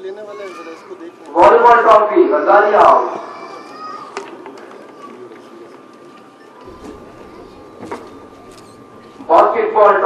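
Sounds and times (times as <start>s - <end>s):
man announcing: 0.0s - 3.2s, 9.3s - 10.0s.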